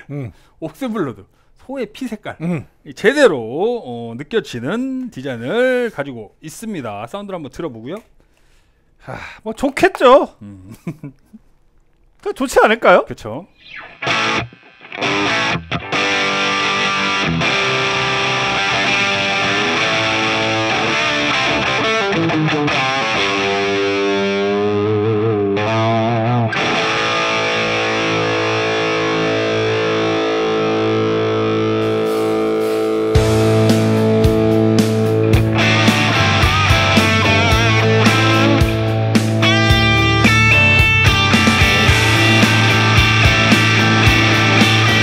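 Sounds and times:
distorted electric guitar: 13.5 - 45.0.

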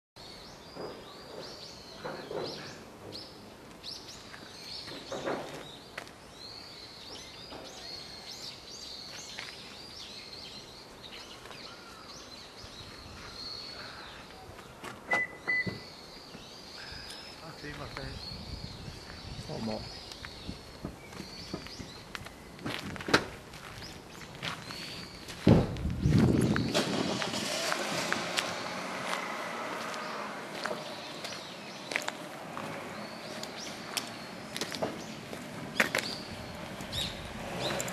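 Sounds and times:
small birds chirping: 0.2 - 27.0, 28.4 - 37.9
steady outdoor hiss: 0.2 - 37.9
footsteps on paved path: 0.4 - 6.5, 7.1 - 15.1, 16.1 - 37.9
low rumble on microphone: 18.0 - 22.0, 25.4 - 27.4.

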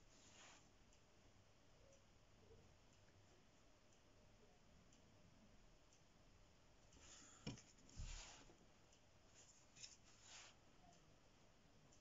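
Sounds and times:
brush strokes on paper: 0.0 - 0.7, 7.0 - 8.6, 9.3 - 10.7.

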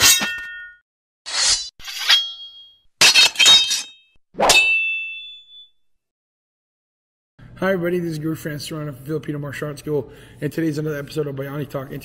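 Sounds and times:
sharp metallic clangs ringing: 1.9 - 5.8.

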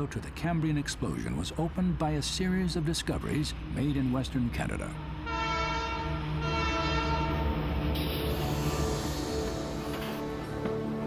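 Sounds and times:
train rumble: 0.0 - 11.0
locomotive air horn blasts: 5.2 - 7.6.

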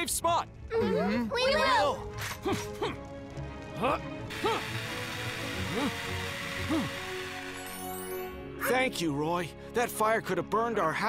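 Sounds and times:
cartoon mechanical whirring: 4.3 - 8.4
hose spraying hiss: 4.3 - 8.4.

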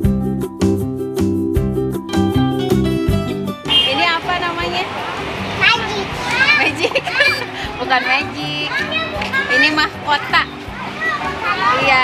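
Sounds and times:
children chattering and calling out: 4.8 - 12.0.

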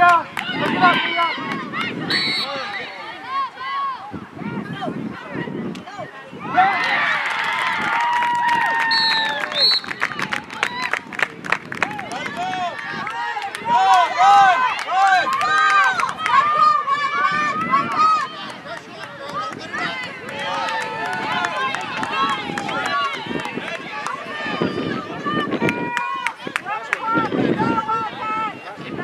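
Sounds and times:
girls shouting and calling out: 2.8 - 5.6, 15.8 - 18.5.

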